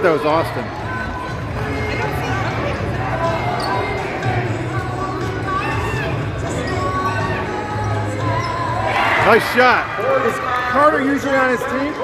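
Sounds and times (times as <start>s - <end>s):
chatter of spectators: 0.0s - 12.0s.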